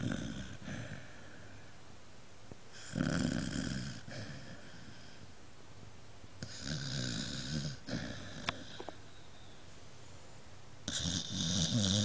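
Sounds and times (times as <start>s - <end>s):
dog snoring: 0.0s - 1.2s, 2.7s - 5.2s, 6.4s - 9.0s, 10.8s - 12.0s.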